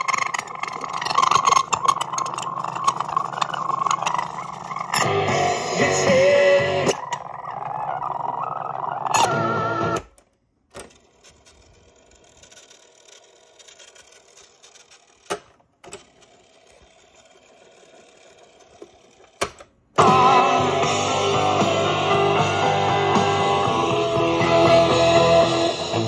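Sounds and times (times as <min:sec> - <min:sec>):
warbling fast-forward music: 0:00.0 - 0:10.0, 0:20.0 - 0:26.0
tape winding: 0:00.0 - 0:20.0
rock music from speakers: 0:04.9 - 0:07.0, 0:09.2 - 0:10.0, 0:20.0 - 0:26.0.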